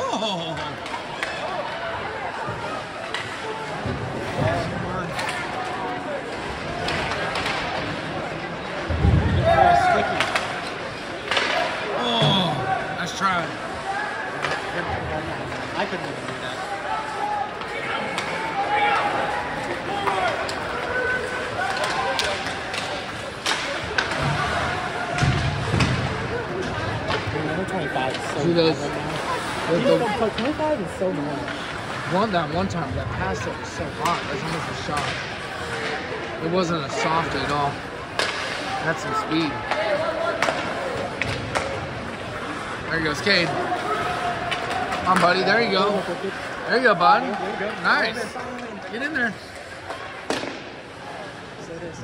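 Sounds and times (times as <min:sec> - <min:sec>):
voices and chatter: 0:00.0 - 0:52.0
hockey sticks and puck clacking: 0:00.5 - 0:51.5.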